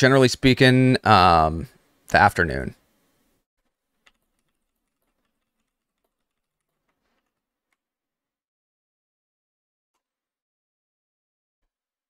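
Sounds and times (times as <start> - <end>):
computer keyboard clicks: 4.0 - 7.8.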